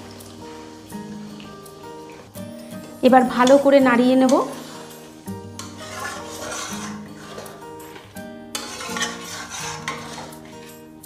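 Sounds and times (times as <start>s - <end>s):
metal spatula scraping a pan: 4.2s - 11.0s.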